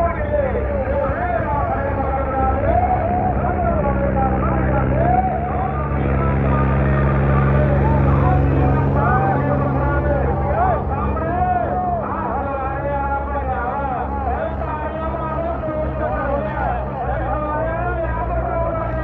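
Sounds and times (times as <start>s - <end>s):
man talking: 0.0s - 19.0s
tractor diesel engine under load: 0.0s - 19.0s.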